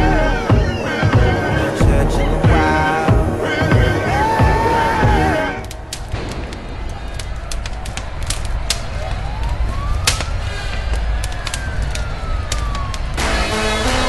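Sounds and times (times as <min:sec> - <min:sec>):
music: 0:00.0 - 0:06.1, 0:13.2 - 0:14.0
deep steady rumble: 0:00.0 - 0:09.4
siren-like wail: 0:00.0 - 0:14.0
sharp clicks: 0:05.6 - 0:13.2.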